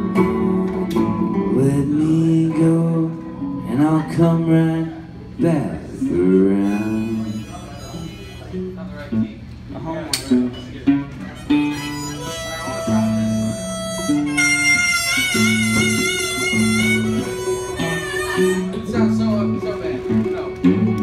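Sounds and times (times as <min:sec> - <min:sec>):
guitars playing chords: 0:00.0 - 0:21.0
harmonica playing: 0:06.1 - 0:09.2, 0:11.0 - 0:21.0.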